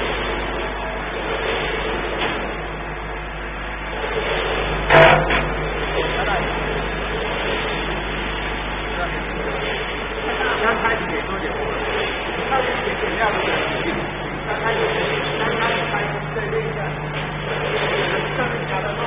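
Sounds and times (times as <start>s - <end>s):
machinery humming: 0.0s - 19.0s
sharp loud clack: 4.9s - 5.5s.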